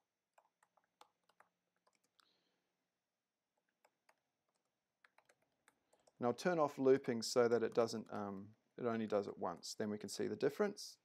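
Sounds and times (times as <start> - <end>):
computer keyboard typing: 0.3 - 2.3, 3.7 - 6.2.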